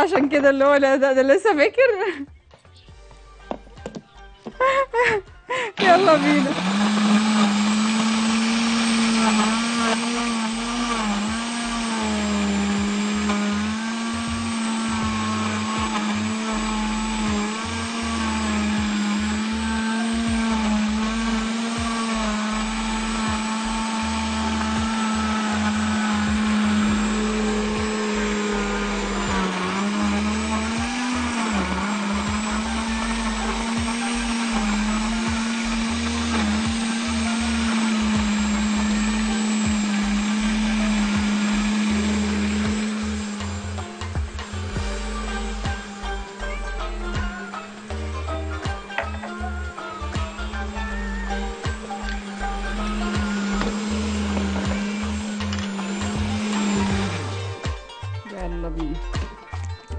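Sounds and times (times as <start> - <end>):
blender motor running: 5.5 - 58.3.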